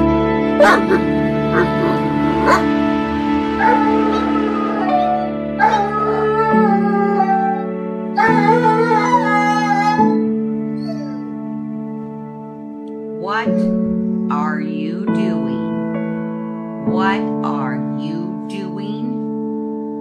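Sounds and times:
background music with chords: 0.0 - 20.0
dog whining and yelping: 0.6 - 2.7, 8.2 - 11.3.

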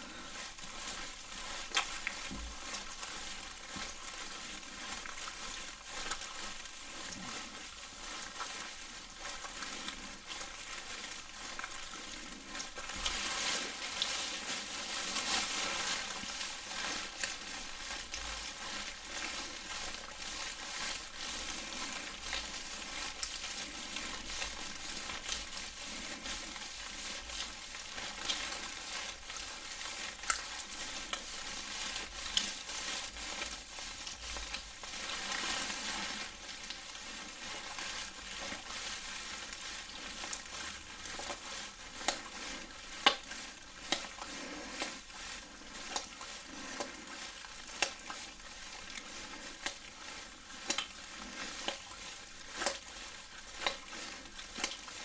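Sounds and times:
gloved hands rubbing: 0.0 - 55.0.

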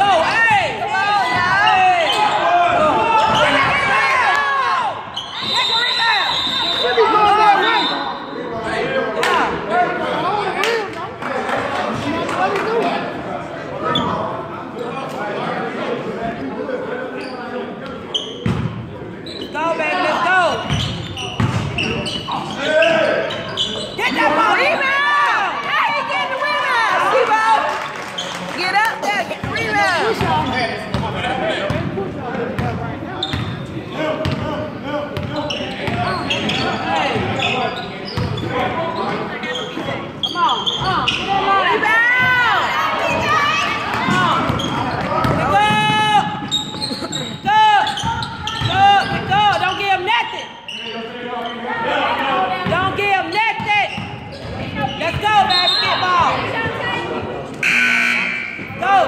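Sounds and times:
players calling out: 0.0 - 11.0, 32.4 - 59.0
sneakers squeaking on gym floor: 1.4 - 3.9, 5.1 - 8.5, 17.2 - 24.9, 32.6 - 34.4, 35.2 - 51.7, 52.6 - 56.8
basketball bouncing: 20.6 - 21.8.

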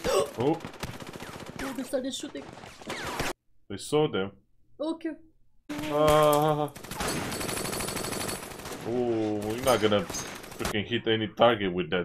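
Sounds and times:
rapid gunfire: 0.0 - 3.4, 6.7 - 10.8.

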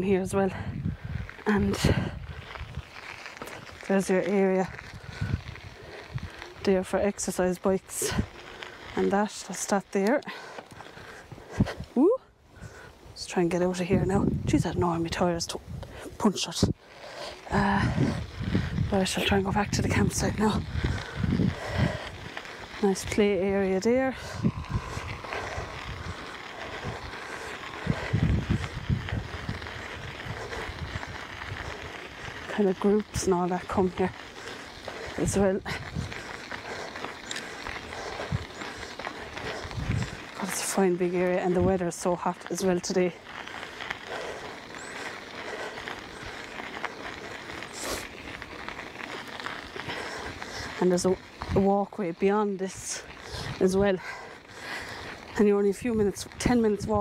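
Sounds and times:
bicycle tyres on gravel: 0.0 - 57.0
wind buffeting microphone: 0.0 - 57.0.

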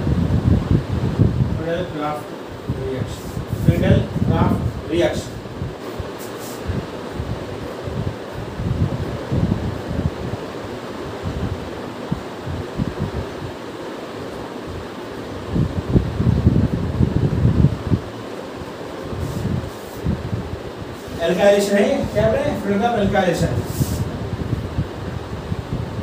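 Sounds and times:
background hiss: 0.0 - 26.0.

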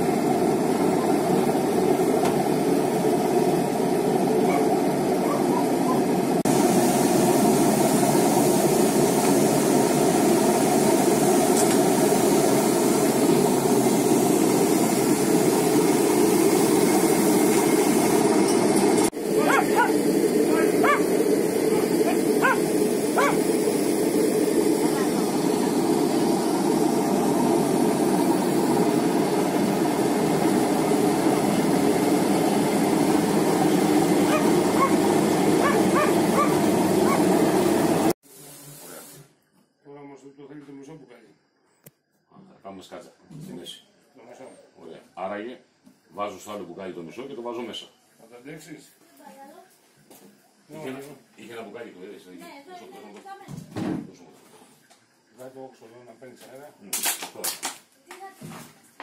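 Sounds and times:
grape crusher motor running: 0.0 - 38.2.

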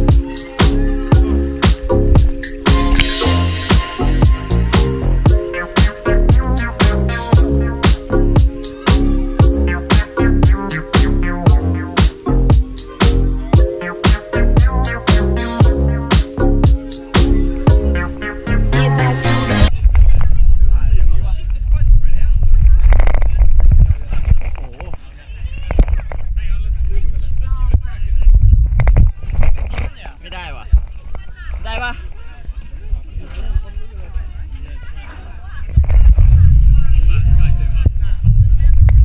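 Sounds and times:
faint voices: 0.0 - 28.2
faint voices of people: 6.4 - 15.0, 19.0 - 39.0
wind rumble on microphone: 19.7 - 39.0.

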